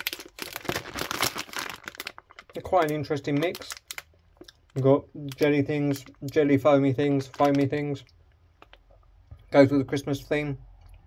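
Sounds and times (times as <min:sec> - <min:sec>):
plastic sweet bag crinkling: 0:00.0 - 0:09.0.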